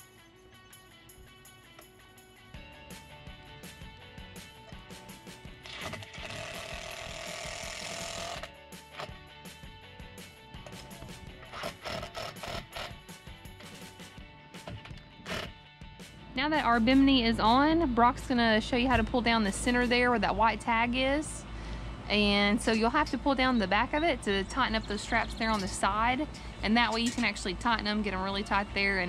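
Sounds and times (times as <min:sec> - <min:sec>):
background music: 0:00.0 - 0:29.0
cordless drill running: 0:05.6 - 0:08.6, 0:11.5 - 0:12.9.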